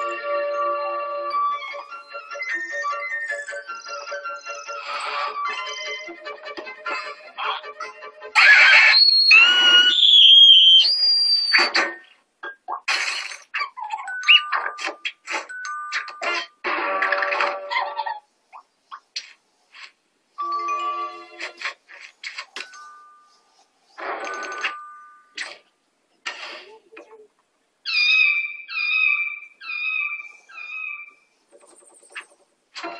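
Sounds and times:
cartoon whistling tones: 8.4 - 11.6
cartoon noise bursts: 8.4 - 11.8.

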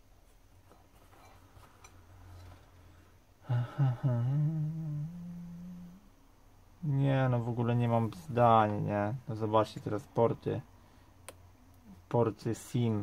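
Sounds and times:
man humming: 3.4 - 6.2.

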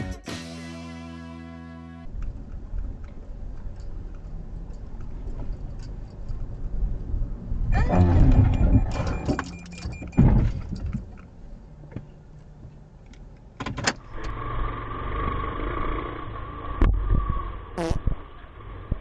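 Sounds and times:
music: 0.0 - 2.1
car driving in traffic: 2.1 - 19.0.

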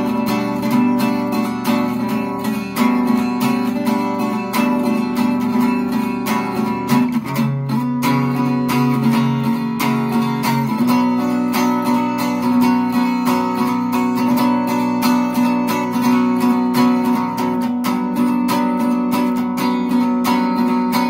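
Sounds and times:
guitar strumming: 0.0 - 21.0.

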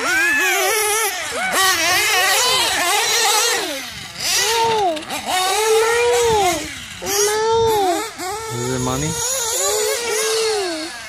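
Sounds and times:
nitro engine revving: 0.0 - 11.0.

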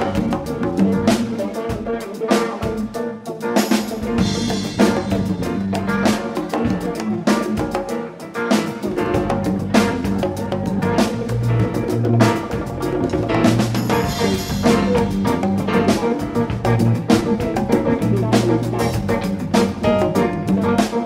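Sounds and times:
live rock band playing: 0.0 - 21.0
drum kit hits: 3.6 - 21.0.

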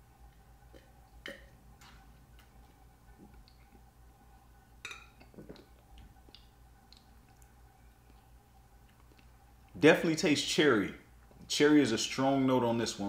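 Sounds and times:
low steady hum: 0.0 - 13.0
mouth clicks and smacks: 5.2 - 9.8.

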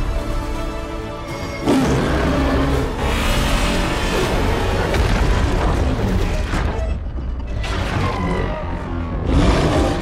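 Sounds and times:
rumbling monster roar: 1.6 - 6.2, 7.9 - 10.0.

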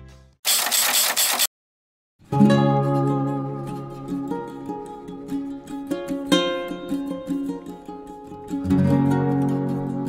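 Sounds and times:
rapid mechanical clicking: 0.5 - 1.5
background music: 2.3 - 10.0.

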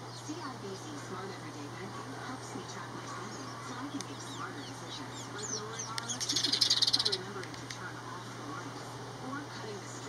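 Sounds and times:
sparrows chirping: 0.0 - 8.8
harsh rapid bird chatter: 0.0 - 8.9.

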